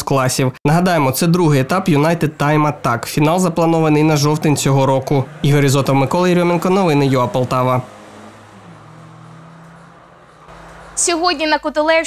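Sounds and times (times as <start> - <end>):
distant race car engine: 0.7 - 12.0.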